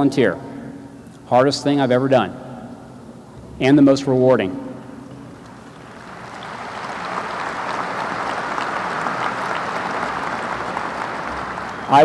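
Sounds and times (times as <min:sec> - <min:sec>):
audience applauding: 0:05.4 - 0:12.0.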